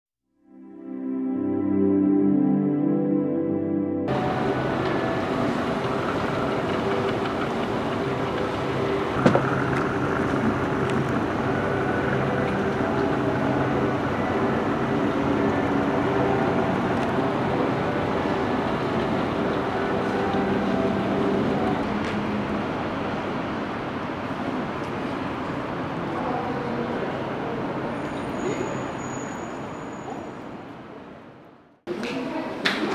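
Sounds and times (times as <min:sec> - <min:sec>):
low city background rumble: 0:04.1 - 0:29.2
noisy background ambience: 0:04.1 - 0:32.9.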